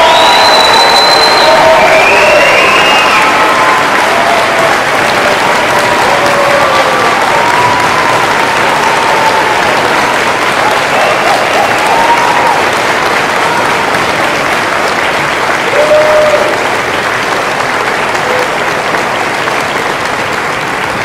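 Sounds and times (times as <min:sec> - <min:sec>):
audience applauding: 0:00.0 - 0:21.0.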